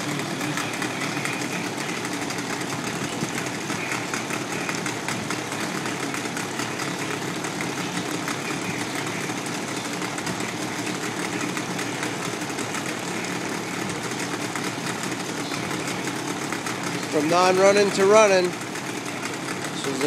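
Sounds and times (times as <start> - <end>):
outboard motor running: 0.0 - 20.0.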